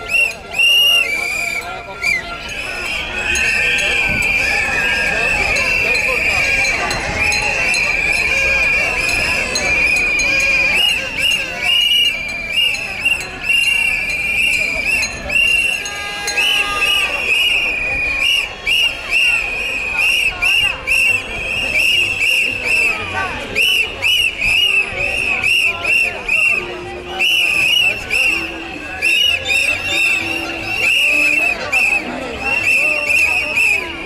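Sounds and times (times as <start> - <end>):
crowd voices: 0.0 - 34.0
shrill whistle blasts: 0.0 - 34.0.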